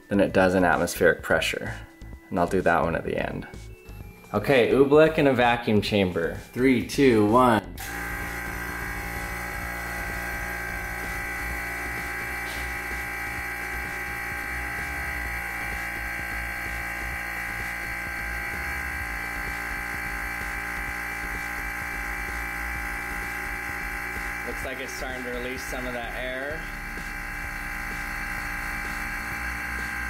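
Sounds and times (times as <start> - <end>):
vacuum pump humming: 7.8 - 30.0.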